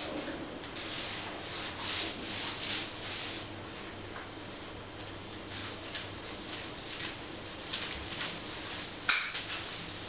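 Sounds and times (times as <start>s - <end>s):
hand rubbing a surface: 0.8s - 3.5s.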